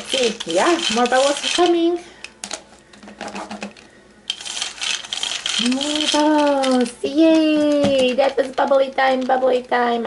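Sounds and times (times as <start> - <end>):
plastic toy mechanism clicking: 0.0 - 1.8, 4.3 - 9.3.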